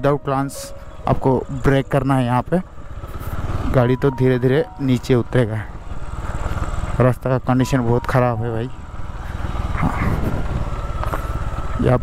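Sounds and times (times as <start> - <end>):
motorcycle engine at low revs: 0.8 - 12.0.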